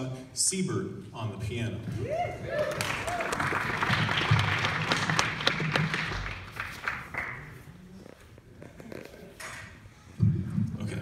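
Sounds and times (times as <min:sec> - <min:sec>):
audience applause: 0:02.4 - 0:07.6.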